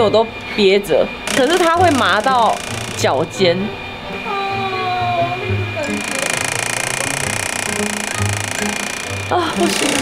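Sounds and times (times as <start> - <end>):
background music: 1.1 - 10.0
mechanical buzzing rattle: 1.2 - 3.4, 5.8 - 10.0.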